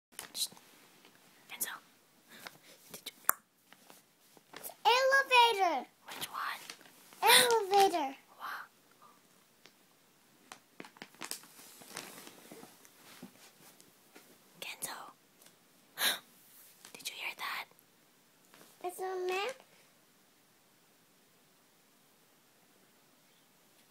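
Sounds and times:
child whispering: 1.5 - 1.8, 4.6 - 9.2, 14.6 - 15.2, 17.0 - 17.7, 18.8 - 19.6.

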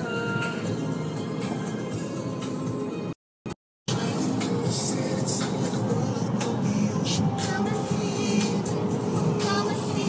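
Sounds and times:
car road and engine noise: 0.0 - 3.2, 3.9 - 10.0
song on car stereo: 0.0 - 3.2, 3.9 - 10.0.

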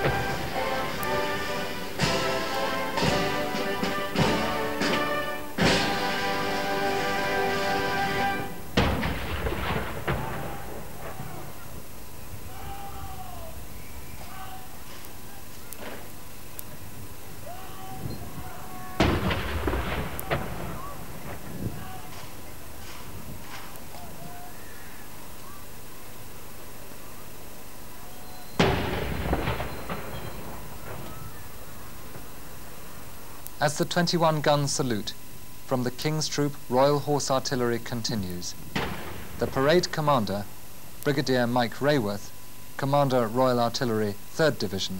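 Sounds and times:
band holding a chord: 0.0 - 8.8
field gun firing with echo: 8.7 - 11.8, 19.0 - 21.6, 28.6 - 31.7, 38.7 - 40.5.

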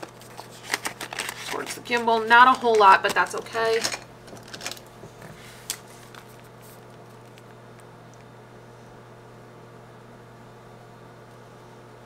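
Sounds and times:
plastic pouch rustling: 0.0 - 3.8
steady low hum: 0.0 - 12.0.

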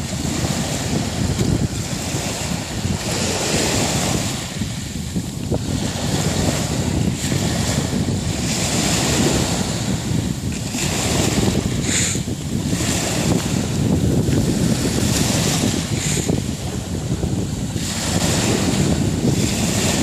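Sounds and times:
waves washing on shingle: 0.0 - 20.0
wind buffeting microphone: 0.0 - 20.0.

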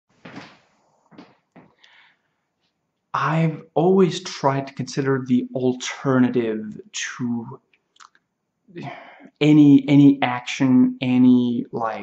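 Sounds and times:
soft knocking and scuffing: 0.2 - 1.8.

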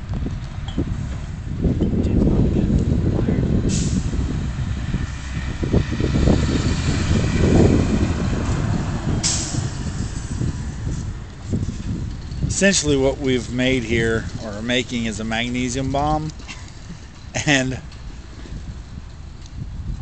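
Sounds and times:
heavy vehicle engine rumbling: 0.0 - 20.0
air brake hiss: 3.7 - 4.2, 9.2 - 9.7.

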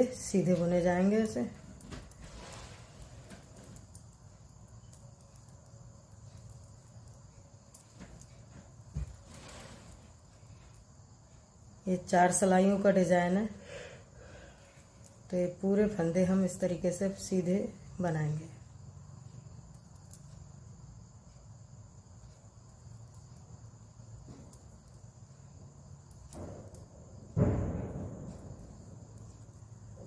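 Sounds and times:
knitting needles clicking: 3.8 - 8.4
low thump: 27.3 - 28.8.

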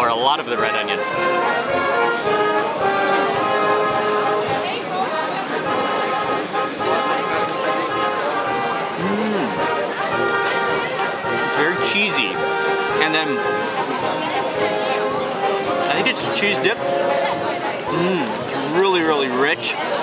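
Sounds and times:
brass band playing: 0.0 - 20.0
crowd chatter: 0.0 - 20.0.

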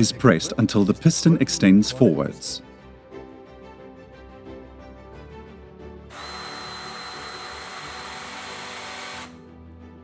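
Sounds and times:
hydraulic pump motor whining: 6.1 - 9.4.

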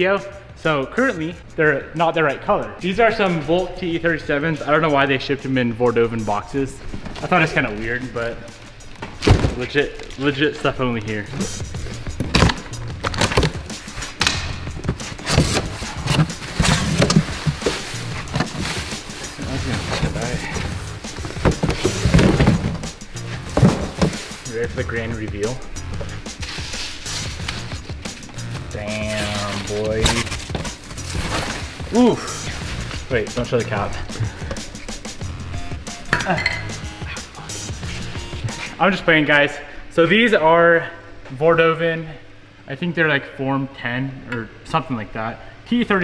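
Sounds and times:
background music: 0.0 - 39.8.

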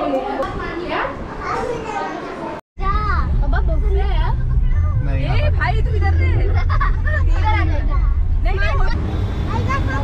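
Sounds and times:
children chattering: 0.0 - 3.0, 4.0 - 10.0.

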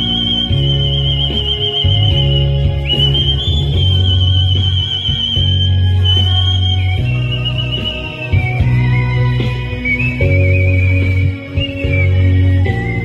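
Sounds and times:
backing track with bass line: 0.0 - 13.0
person whistling into microphone: 0.0 - 13.0.

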